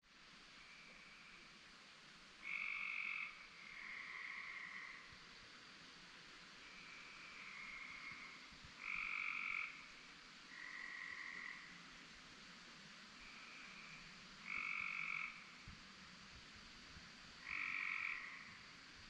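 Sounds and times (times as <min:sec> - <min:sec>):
background frog chorus: 0:02.4 - 0:05.2, 0:06.6 - 0:12.1, 0:13.2 - 0:15.7, 0:17.3 - 0:19.0
frogs calling: 0:02.4 - 0:05.2, 0:06.6 - 0:11.9, 0:13.2 - 0:15.7, 0:17.4 - 0:18.8.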